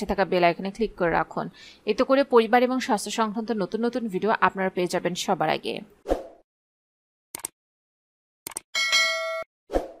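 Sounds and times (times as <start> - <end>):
bright bell chime: 8.8 - 9.5.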